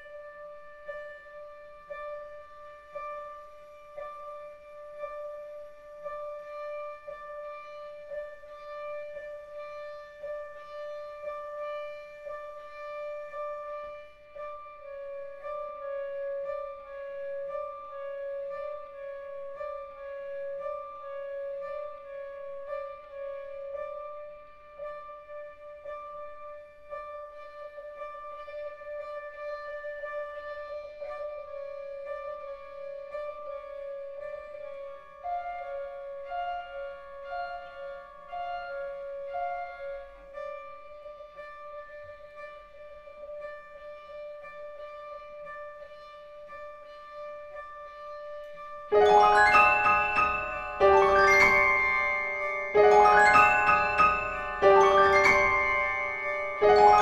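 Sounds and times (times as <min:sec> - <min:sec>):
chamber music held high note: 0:48.9 - 0:57.0.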